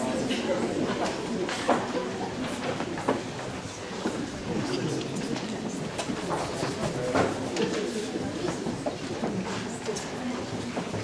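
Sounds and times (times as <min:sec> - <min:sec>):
murmur of voices: 0:00.0 - 0:11.0
scattered clicks and knocks: 0:05.1 - 0:07.8.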